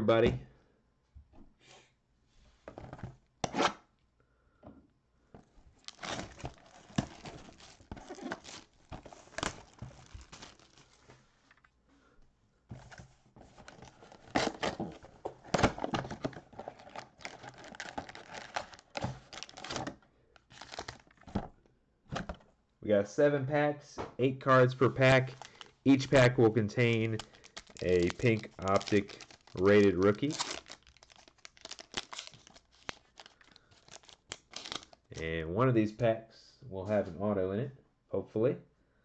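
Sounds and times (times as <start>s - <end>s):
plastic wrap crinkling: 5.7s - 11.7s, 12.8s - 21.3s, 24.8s - 35.1s
plastic tearing: 5.8s - 11.7s, 12.8s - 21.3s, 25.1s - 35.1s.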